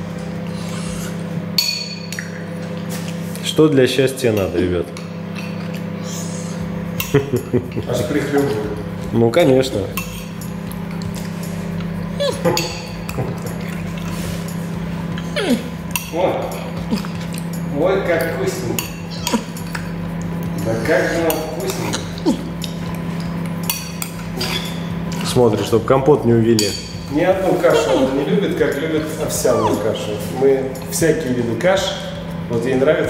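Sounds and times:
steady low hum: 0:00.0 - 0:33.0
metal spoon clinking on glass bowl: 0:01.6 - 0:02.2
short falling squeak: 0:29.5 - 0:29.9.

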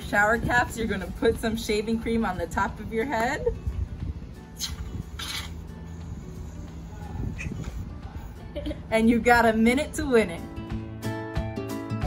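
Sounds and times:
background music: 0:00.0 - 0:12.0
aerosol can spraying foam: 0:04.6 - 0:07.9.

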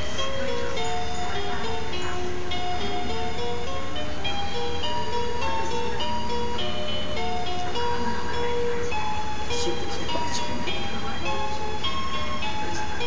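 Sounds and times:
baby mobile playing tune: 0:00.0 - 0:13.0
steady low hum: 0:00.0 - 0:13.0.

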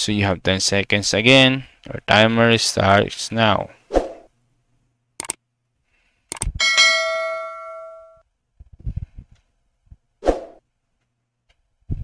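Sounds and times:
bright bell ding: 0:06.6 - 0:08.2.

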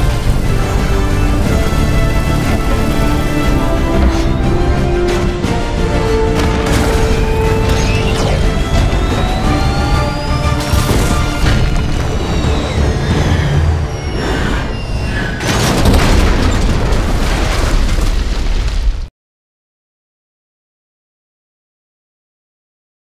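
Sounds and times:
dramatic film score: 0:00.0 - 0:17.8
heavy crashes and booms: 0:06.1 - 0:14.2, 0:14.8 - 0:19.1
jet aircraft whine: 0:07.7 - 0:15.5.

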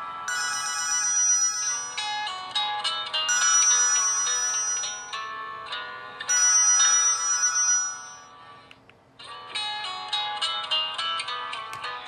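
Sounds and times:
melodic phone ringtone: 0:00.0 - 0:08.6.

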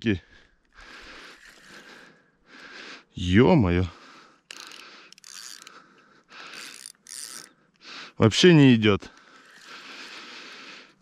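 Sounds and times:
fishing reel whirring and clicking: 0:00.6 - 0:02.0, 0:04.4 - 0:07.8, 0:09.1 - 0:11.0.

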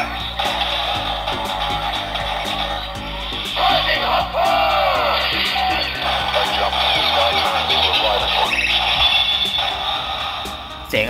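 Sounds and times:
toy gun electronic sound effects: 0:00.0 - 0:10.7
music with a steady beat: 0:00.0 - 0:11.0
sweeping sci-fi tones: 0:00.0 - 0:11.0.

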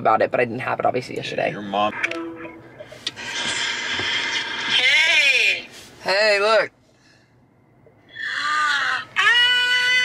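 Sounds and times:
steady hiss through phone speaker: 0:02.4 - 0:06.7.

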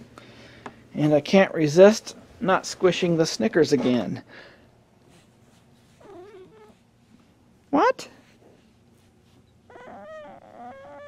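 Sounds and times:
cat meowing softly: 0:06.0 - 0:06.8.

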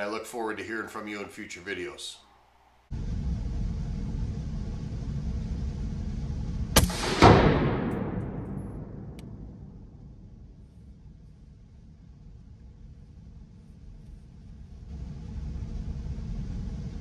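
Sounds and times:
low room rumble: 0:02.9 - 0:17.0
rifle shots indoors: 0:06.8 - 0:11.4.

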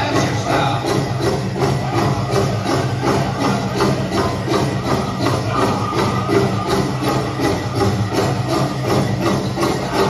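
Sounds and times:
steady drumbeat: 0:00.0 - 0:10.0.

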